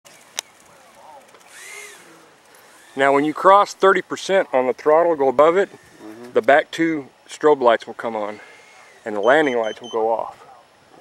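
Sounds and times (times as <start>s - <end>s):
electric fan motor whining: 0.4s - 6.5s, 8.1s - 10.0s.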